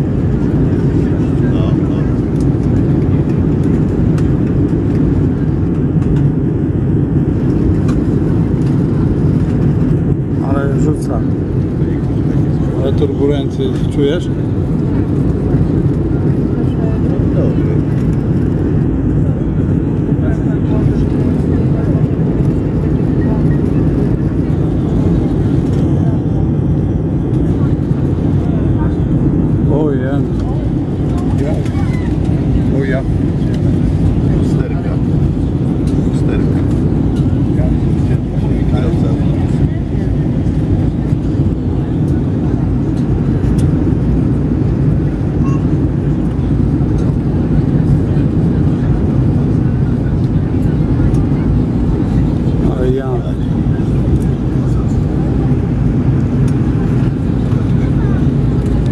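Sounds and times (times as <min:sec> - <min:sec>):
airliner cabin engine rumble: 0:00.0 - 0:58.9
faint passenger voices: 0:00.0 - 0:58.9.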